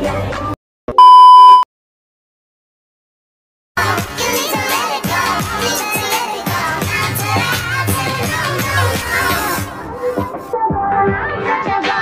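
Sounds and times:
loud electronic beep: 0:01.0 - 0:01.6.

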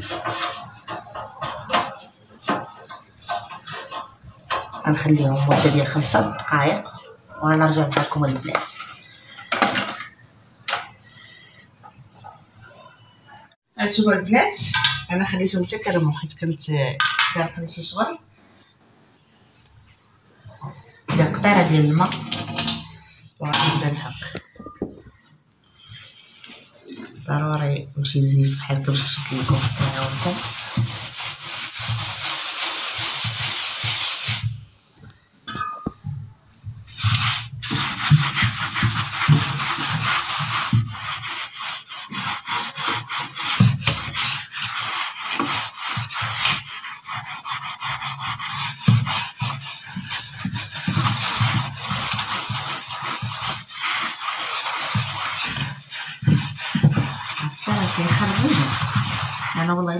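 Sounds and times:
scrubbing silver tray: 0:00.0 - 0:10.2, 0:19.2 - 0:25.3, 0:28.1 - 0:34.8, 0:35.5 - 0:59.9.

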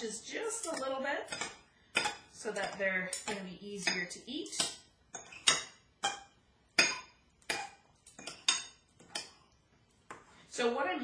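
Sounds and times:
knife clinking against ceramic bowl: 0:00.5 - 0:09.4.

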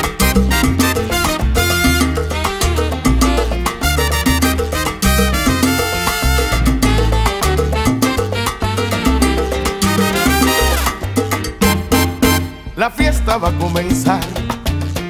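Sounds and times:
salsa band playing: 0:00.0 - 0:15.0.

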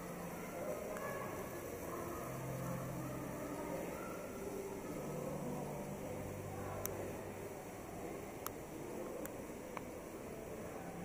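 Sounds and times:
faint far-off voices: 0:00.0 - 0:11.0
ventilation hum: 0:00.0 - 0:11.0.

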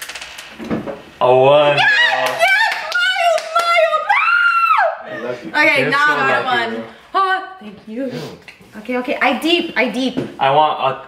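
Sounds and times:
excited cheering voices: 0:01.7 - 0:05.3
hand claps: 0:02.1 - 0:03.8.

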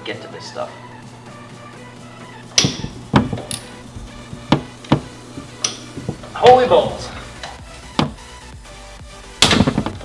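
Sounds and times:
ratchet clanking on metal: 0:02.5 - 0:08.2.

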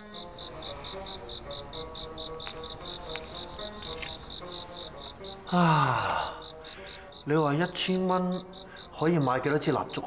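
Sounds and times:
crickets chirping: 0:00.0 - 0:10.0
soft background music: 0:00.0 - 0:10.0.

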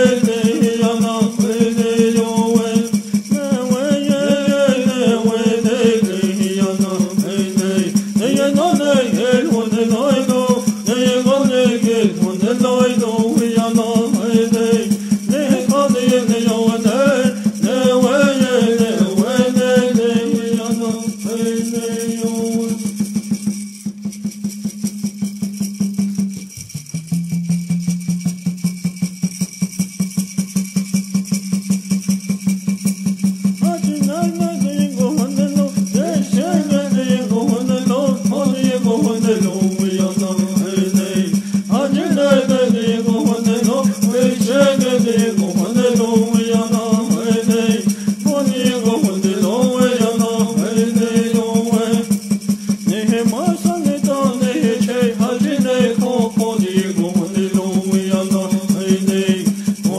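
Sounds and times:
man chanting: 0:00.0 - 0:22.8, 0:33.6 - 0:50.4, 0:52.9 - 0:56.4
gourd rattle shaking: 0:00.0 - 0:59.9
water drum beat: 0:00.0 - 0:59.9
water drum beaten in a fast roll: 0:22.7 - 0:47.6
gourd rattle: 0:23.4 - 0:36.4.

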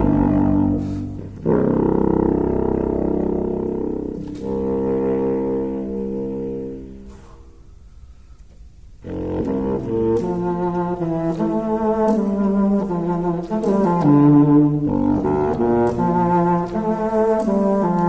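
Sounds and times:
contrabassoon low notes: 0:00.0 - 0:18.0.

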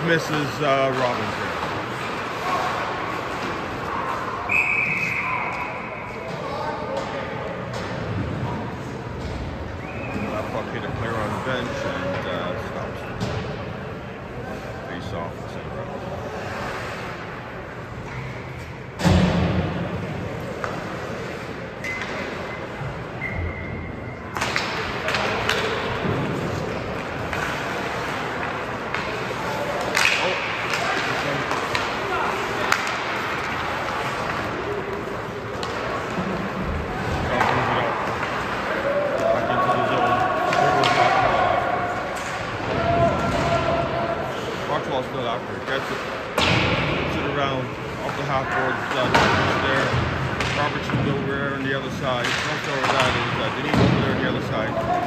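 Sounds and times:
skates and sticks on ice: 0:00.1 - 0:13.4, 0:15.9 - 0:22.9, 0:24.3 - 0:55.0.

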